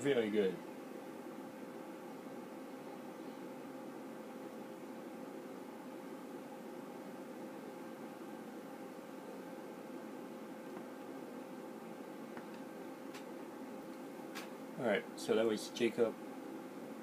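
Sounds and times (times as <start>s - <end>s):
faint constant hum: 0.0s - 17.0s
room tone hiss: 0.0s - 17.0s.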